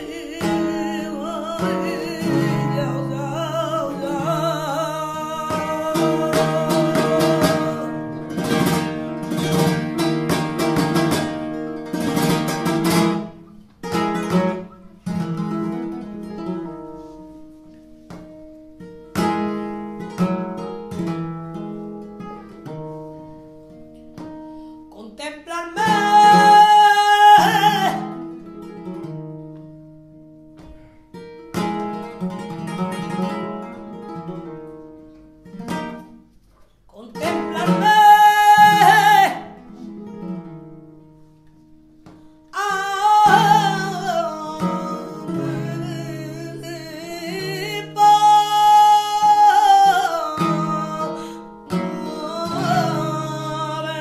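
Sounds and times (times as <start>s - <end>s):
woman singing: 0.0s - 8.8s, 24.9s - 28.4s, 36.9s - 39.7s, 42.5s - 54.0s
flamenco guitar: 0.0s - 54.0s.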